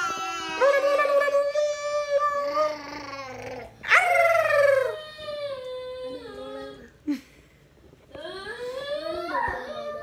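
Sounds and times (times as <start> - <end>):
high-pitched voice howling: 0.4 - 6.8.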